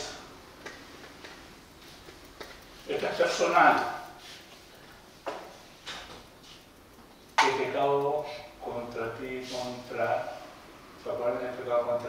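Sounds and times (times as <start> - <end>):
faint ticks: 0.6 - 9.9.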